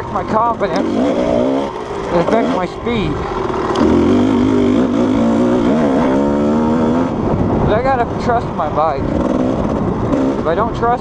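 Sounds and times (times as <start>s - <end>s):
dirt bike engine revving: 0.0s - 7.7s, 9.0s - 10.9s.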